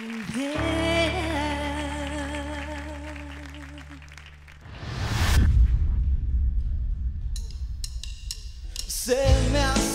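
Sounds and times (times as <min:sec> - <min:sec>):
audience applause: 0:00.0 - 0:00.8, 0:01.9 - 0:04.8
rising whoosh: 0:04.6 - 0:09.1.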